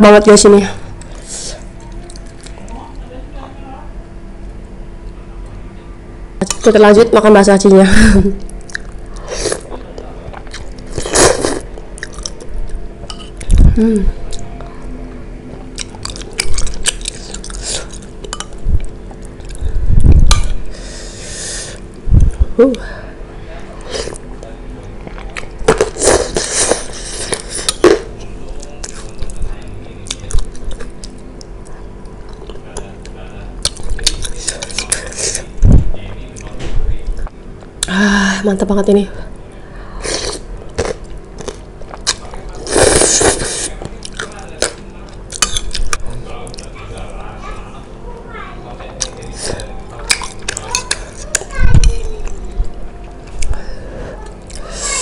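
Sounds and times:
chewing: 1.0 - 2.8, 8.4 - 13.6, 15.7 - 19.6, 30.0 - 35.5, 40.3 - 47.2, 48.8 - 53.6
child and man talking: 46.3 - 52.9, 54.0 - 55.0.

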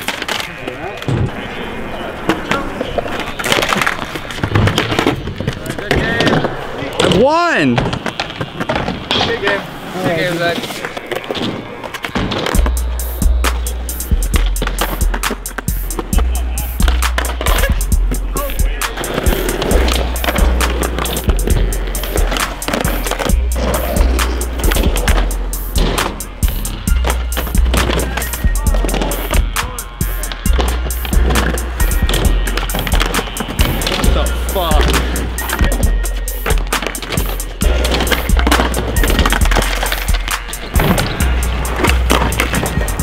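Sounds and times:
skateboards popping and landing: 0.0 - 43.0
skateboards rolling on concrete: 0.0 - 43.0
hip-hop beat with heavy bass: 12.5 - 43.0.

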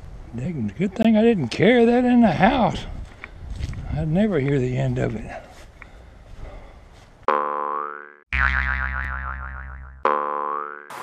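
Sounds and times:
cartoon boing effects: 7.3 - 11.0.

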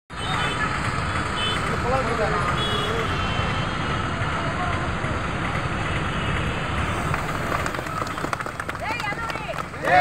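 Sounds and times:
vehicle engine rumbling: 0.1 - 10.0
people's voices: 6.8 - 10.0.

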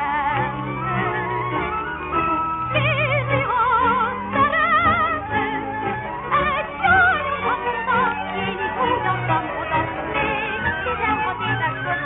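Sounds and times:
woman singing with vibrato: 0.0 - 1.1, 2.6 - 12.0
instrumental accompaniment: 0.0 - 12.0.

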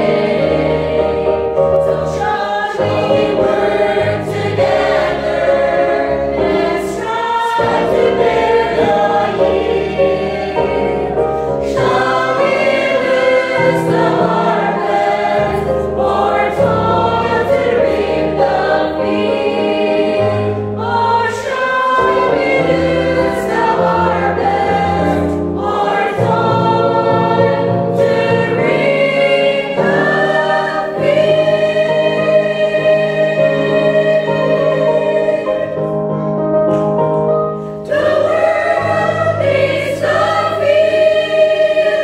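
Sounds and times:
mixed choir singing a hymn: 0.0 - 42.0.

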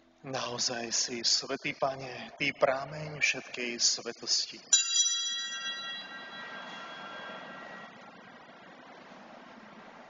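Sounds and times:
altar bell ringing: 4.7 - 8.4.

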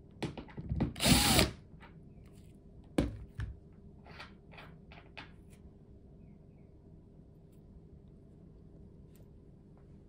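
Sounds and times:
cordless drill motor whine: 1.0 - 1.5.

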